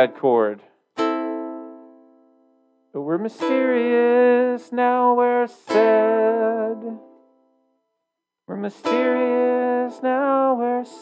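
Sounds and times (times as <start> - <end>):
ukulele chord strummed: 1.0 - 7.4, 8.7 - 11.0.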